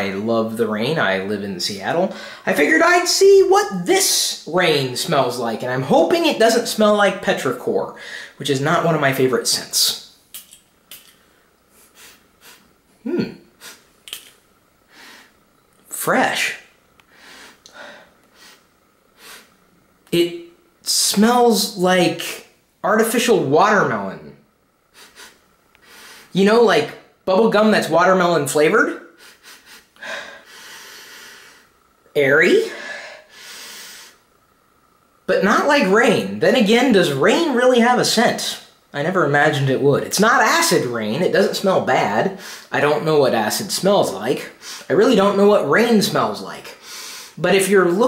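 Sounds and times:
perfume spray hisses: 11.7s - 12.7s, 13.6s - 14.4s, 24.9s - 26.4s
person sniffing: 11.7s - 15.4s, 17.1s - 19.5s, 24.9s - 26.4s, 29.1s - 31.7s, 32.7s - 34.2s, 46.8s - 47.4s.

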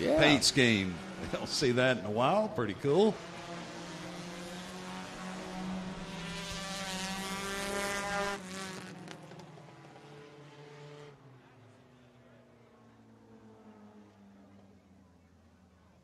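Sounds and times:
race car engines passing: 0.0s - 16.0s.

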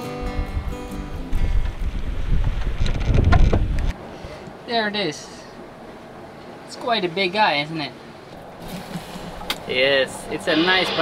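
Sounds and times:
guitar music: 0.0s - 2.1s
wind buffeting microphone: 0.2s - 4.0s.

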